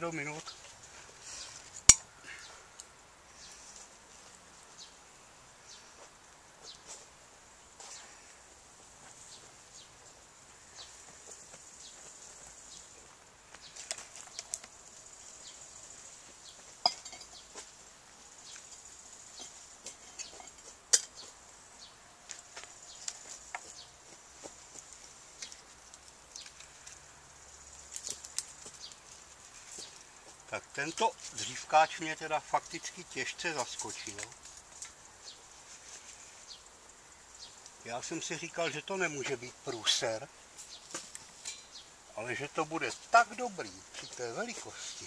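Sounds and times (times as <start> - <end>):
metal cookware clinking: 16.9 - 17.4.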